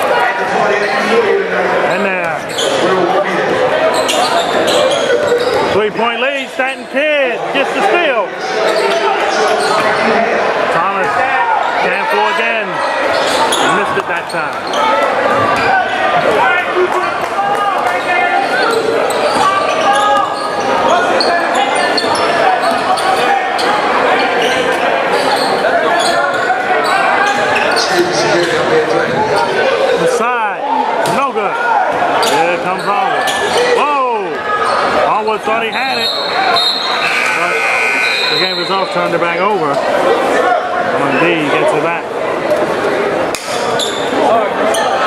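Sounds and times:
crowd chatter and shouts: 0.0s - 45.0s
sneakers squeaking: 2.3s - 5.8s, 8.4s - 10.2s, 12.7s - 16.4s, 17.9s - 28.7s, 31.9s - 33.8s, 34.5s - 39.8s, 43.5s - 45.0s.

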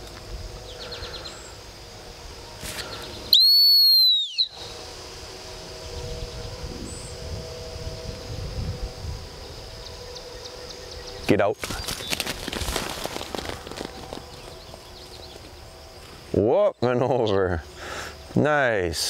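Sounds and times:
dog-training whistle blast: 3.3s - 4.6s.

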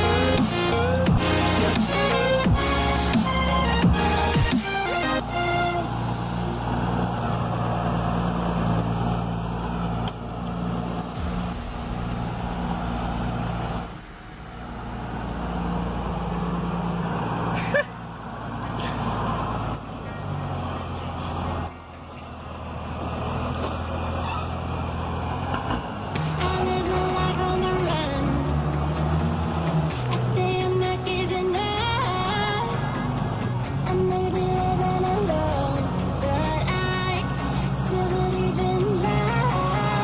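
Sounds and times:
diesel truck engine running: 0.0s - 40.0s.

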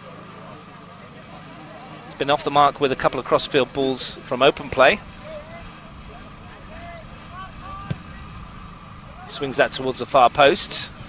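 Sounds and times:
distant shouts from players: 4.8s - 9.5s.

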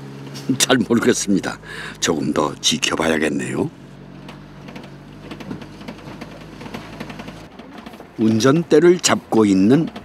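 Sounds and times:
truck engine drone: 0.0s - 10.0s
rhythmic mechanical clatter: 4.2s - 10.0s.

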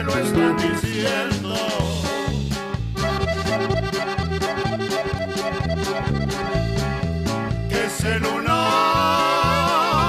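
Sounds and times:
person singing: 0.0s - 2.4s, 7.7s - 10.0s
accordion melody: 0.0s - 10.0s
bass and rhythm accompaniment: 0.0s - 10.0s.

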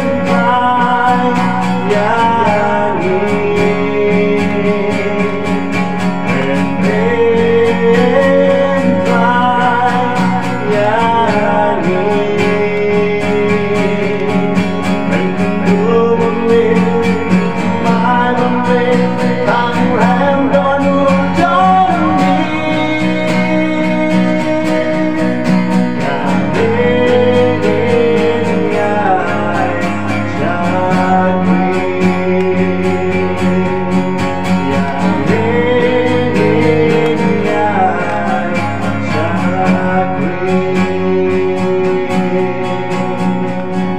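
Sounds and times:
acoustic guitar strumming: 0.0s - 43.9s
man singing a gospel song: 0.0s - 43.9s.

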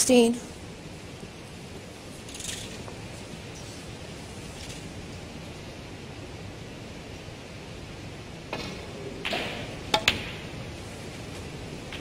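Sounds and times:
quiet arena hush: 0.0s - 12.0s.

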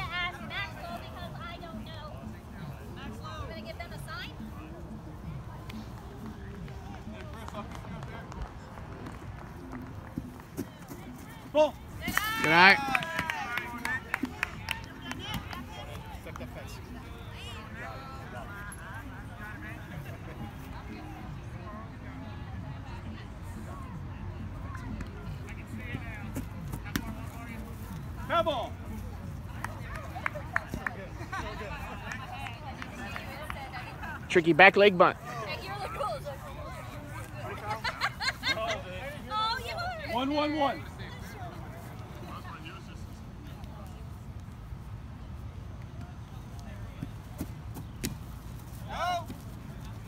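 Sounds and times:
players chatting: 0.0s - 44.5s
faint distant voices: 0.0s - 50.0s
low background noise: 0.0s - 50.0s.

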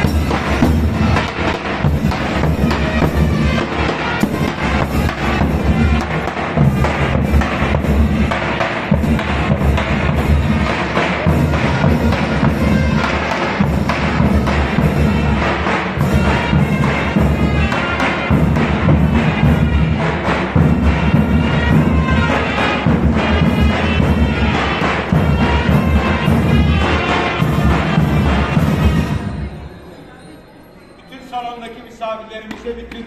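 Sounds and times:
shrill wind instrument melody: 0.0s - 32.4s
cymbals clashing: 0.0s - 33.0s.

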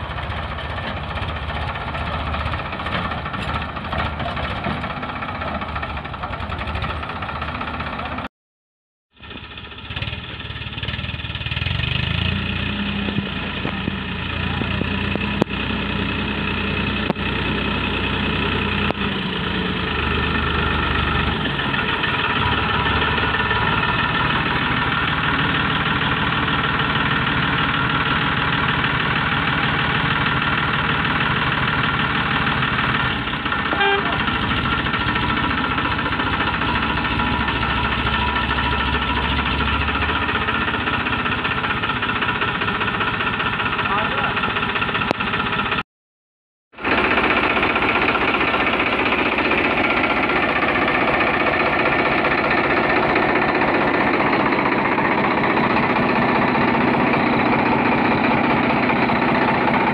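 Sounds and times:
tractor diesel engine under load: 0.0s - 8.3s, 9.1s - 45.8s, 46.7s - 59.9s.

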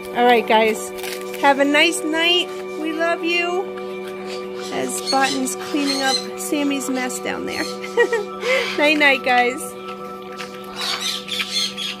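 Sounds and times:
parrot squeaking: 4.2s - 9.0s, 10.7s - 12.0s.

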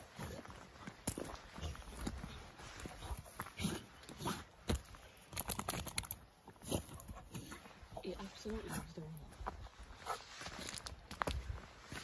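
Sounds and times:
body rustling on grass: 0.0s - 5.2s, 7.1s - 12.0s.

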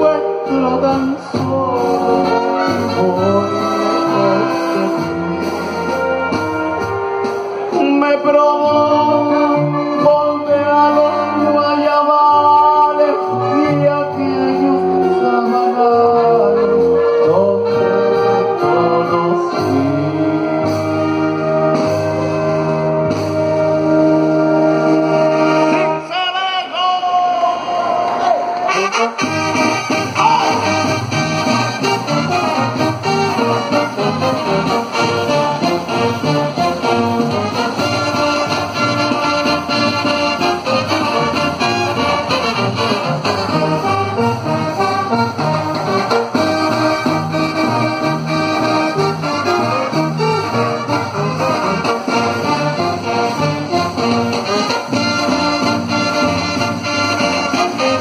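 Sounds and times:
brass band playing dance beat: 0.0s - 58.0s.

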